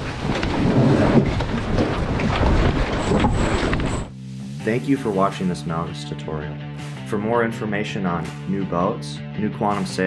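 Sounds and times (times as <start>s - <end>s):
water rushing along hull: 0.0s - 4.1s
wind buffeting microphone: 0.0s - 4.1s.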